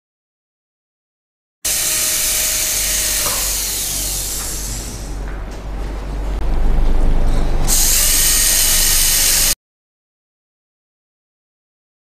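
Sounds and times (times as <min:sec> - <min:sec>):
dental drill hissing: 0:01.7 - 0:05.2, 0:07.7 - 0:09.6.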